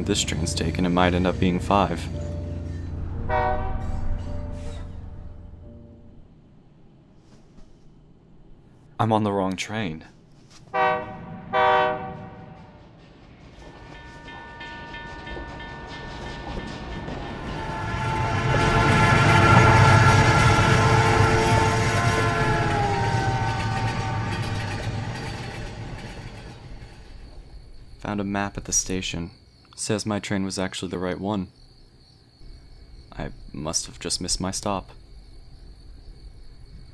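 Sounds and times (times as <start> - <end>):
held train horn chord: 0.0 - 6.1, 10.7 - 12.8, 13.8 - 26.5
train passing rumble: 0.0 - 9.1, 10.1 - 29.6, 31.6 - 36.9
train horn blasts: 3.0 - 4.9, 10.7 - 12.8, 13.9 - 26.5.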